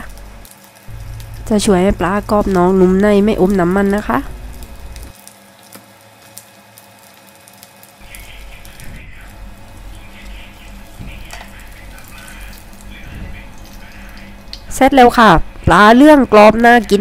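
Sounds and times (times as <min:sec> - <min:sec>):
fish deep-frying in oil: 0:00.0 - 0:17.0.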